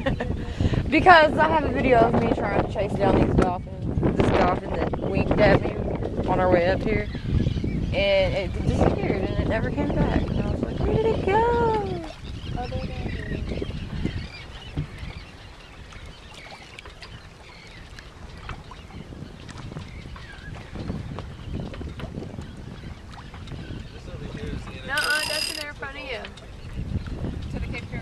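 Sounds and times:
wind and water rushing: 0:00.0 - 0:28.0
faint voices: 0:24.2 - 0:26.3.

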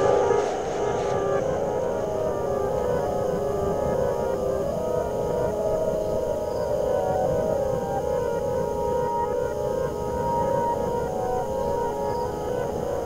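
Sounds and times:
dark ambient drone: 0:00.0 - 0:13.0.

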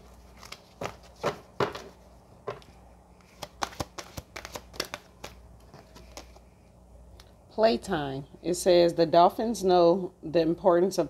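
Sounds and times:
cards shuffling and snapping: 0:00.3 - 0:01.9, 0:03.2 - 0:06.5.

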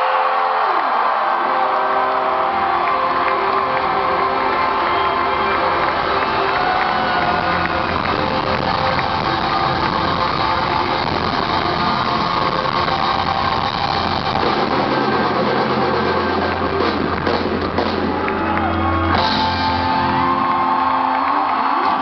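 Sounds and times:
crowd noise: 0:00.0 - 0:22.0.

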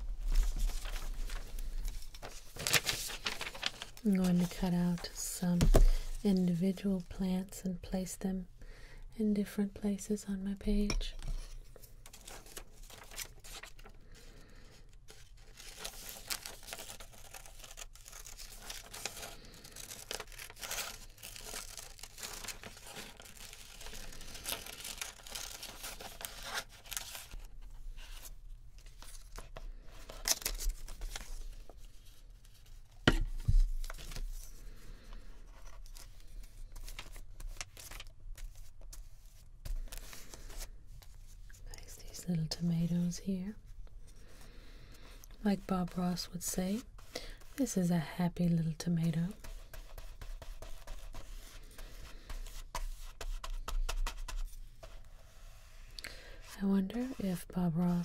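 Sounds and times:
paper rustling: 0:00.0 - 0:06.6, 0:11.4 - 0:42.1, 0:49.0 - 0:58.0.

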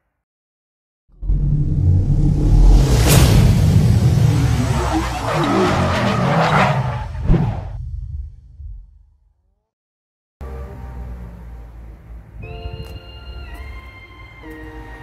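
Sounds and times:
final hit: 0:01.1 - 0:04.8
car engine rumbling: 0:01.1 - 0:09.0
loud whoosh: 0:01.1 - 0:09.0
tyre screech: 0:04.5 - 0:07.8
music: 0:10.4 - 0:15.0.

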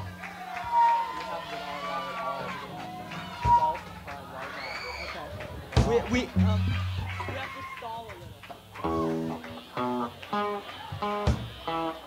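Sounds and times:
voices: 0:00.0 - 0:12.0
low bass note: 0:06.3 - 0:07.3
electric guitar notes: 0:06.3 - 0:07.4, 0:08.8 - 0:12.0.

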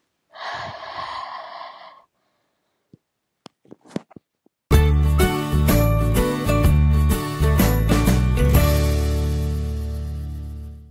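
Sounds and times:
woman breathing: 0:00.3 - 0:02.9.

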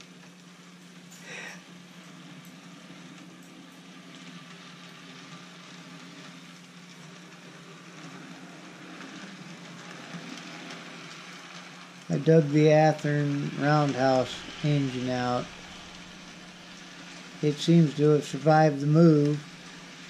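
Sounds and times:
model train running: 0:00.0 - 0:20.0.

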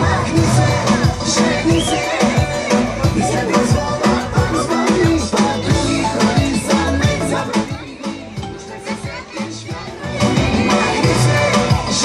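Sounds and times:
dance music with steady beat: 0:00.0 - 0:12.0
children talking: 0:04.7 - 0:11.0.

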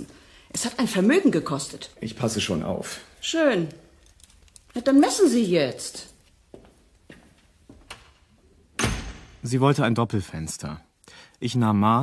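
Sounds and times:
faint footsteps: 0:03.5 - 0:08.5.

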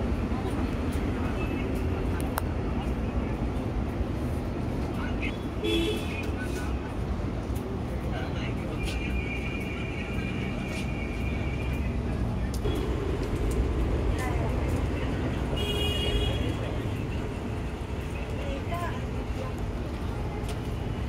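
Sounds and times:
crowd chatter: 0:00.0 - 0:21.0
road traffic rumble: 0:00.0 - 0:21.0.

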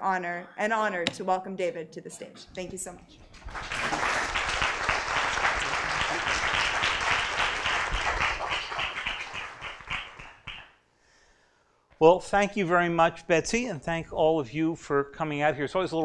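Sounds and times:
audience applauding: 0:03.3 - 0:10.6.

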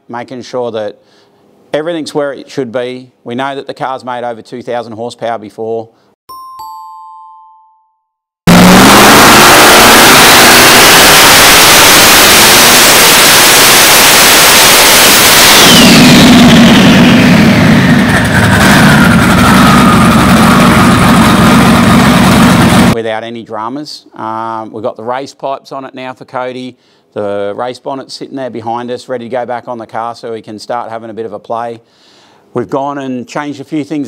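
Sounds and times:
engine at full throttle: 0:08.5 - 0:23.0
whine falling in pitch: 0:08.5 - 0:23.0.

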